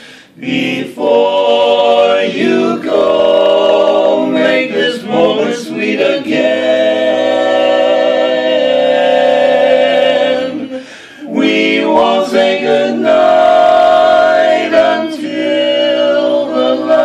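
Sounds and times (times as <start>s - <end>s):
men singing a cappella in harmony: 0.0s - 17.0s.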